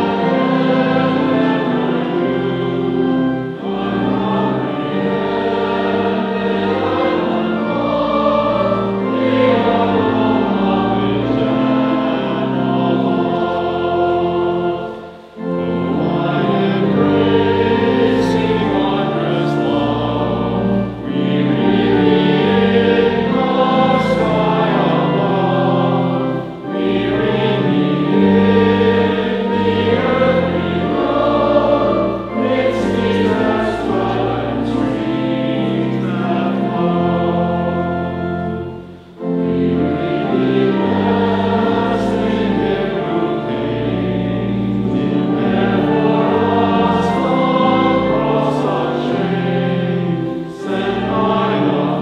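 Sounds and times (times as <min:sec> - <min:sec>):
congregation singing a hymn: 0:00.0 - 0:52.0.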